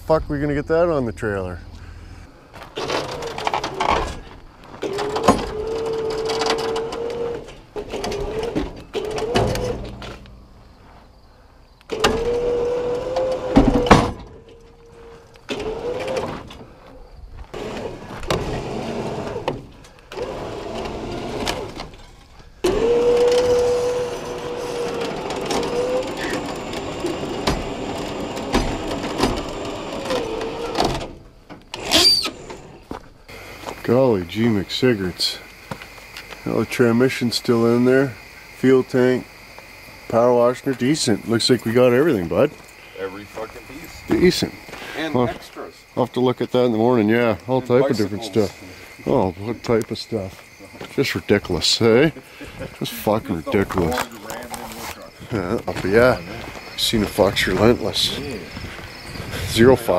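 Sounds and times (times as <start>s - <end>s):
metal knocks and clanks: 2.8s - 10.8s
motor whining: 4.8s - 10.2s, 11.9s - 16.8s, 17.4s - 33.8s
high squeal: 31.8s - 32.6s.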